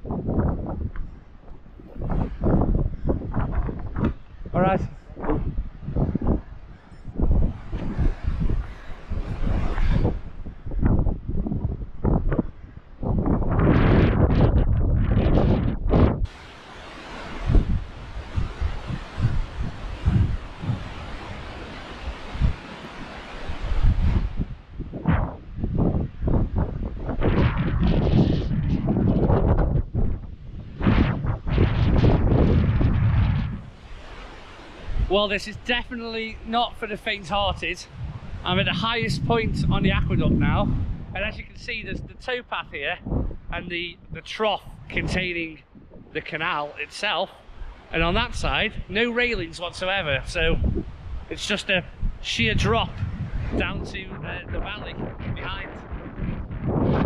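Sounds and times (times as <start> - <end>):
gusty wind buffeting microphone: 0.0 - 57.0.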